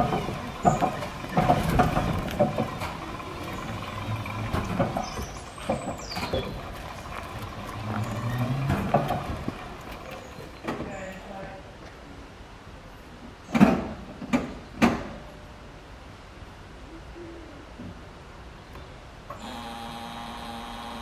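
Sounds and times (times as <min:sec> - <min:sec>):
clicks and knocks: 0:00.0 - 0:10.9
trolleybus running over cobbles: 0:00.0 - 0:11.4.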